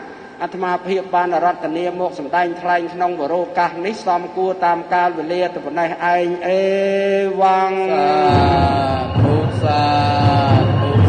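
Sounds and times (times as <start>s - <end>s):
man chanting held notes: 6.2s - 11.0s.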